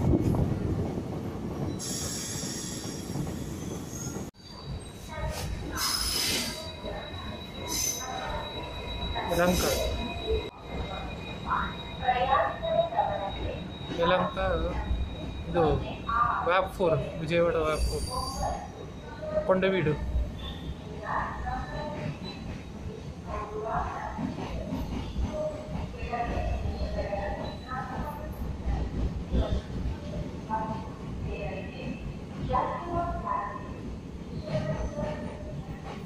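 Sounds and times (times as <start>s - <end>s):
wheel and brake squeal: 1.8s - 12.0s, 17.7s - 19.1s
train wheels rumbling on track: 20.0s - 36.0s.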